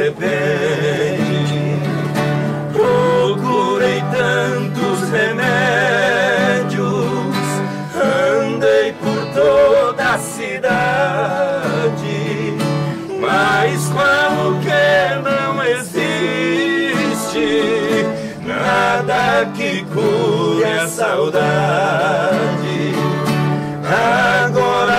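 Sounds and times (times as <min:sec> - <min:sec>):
men singing in duet: 0:00.0 - 0:24.9
strummed acoustic guitar: 0:00.0 - 0:24.9.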